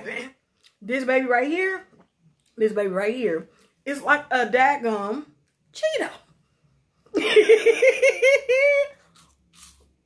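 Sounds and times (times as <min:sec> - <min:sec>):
woman laughing: 0:07.2 - 0:09.0.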